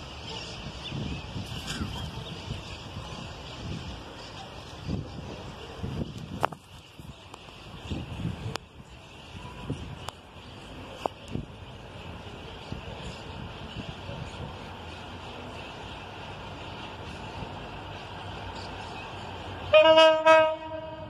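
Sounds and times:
distant train rumbling: 2.0 - 21.0.

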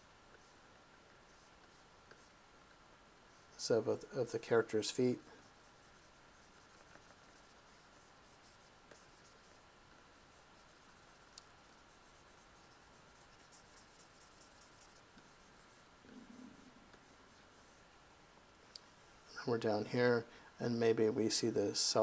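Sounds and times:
stylus scratching on drawing tablet: 0.3 - 18.4.

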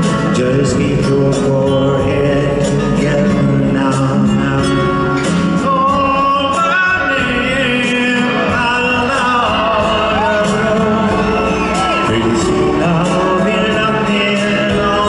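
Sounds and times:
acoustic guitar: 0.0 - 15.0
live band music: 0.0 - 15.0
man singing: 0.0 - 15.0.

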